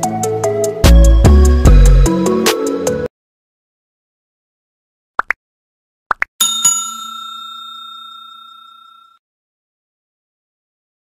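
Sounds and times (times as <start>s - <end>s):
notification bell ding: 6.4s - 9.2s.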